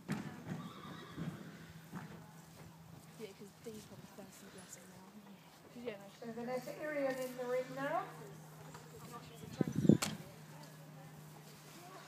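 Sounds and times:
horse whinnying: 0:00.6 - 0:01.8.

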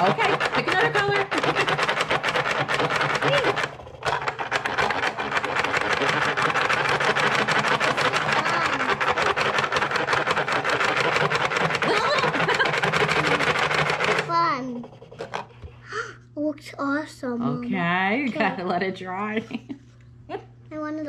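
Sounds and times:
electric motor buzzing: 0:00.0 - 0:15.6.

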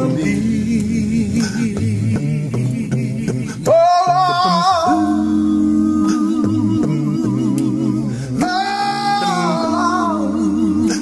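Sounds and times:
male a cappella group singing: 0:00.0 - 0:11.0.

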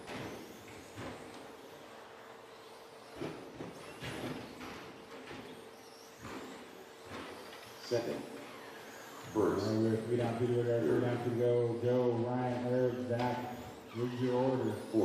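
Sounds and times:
rc truck motor whines: 0:00.0 - 0:15.0
steady faint hum: 0:00.0 - 0:15.0.

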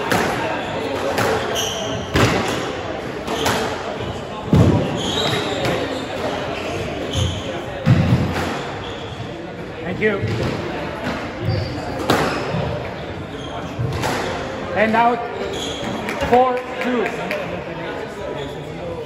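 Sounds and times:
squash ball hitting walls: 0:02.1 - 0:02.7, 0:04.5 - 0:05.0, 0:07.8 - 0:08.7.

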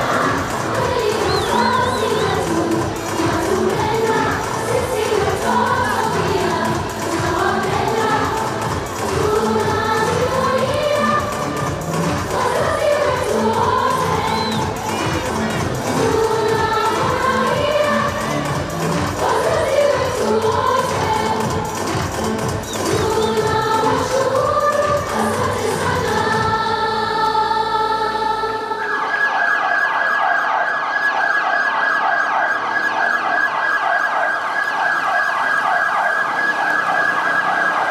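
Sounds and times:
music with singing and a beat: 0:00.0 - 0:29.0
siren yelping: 0:28.6 - 0:37.9.

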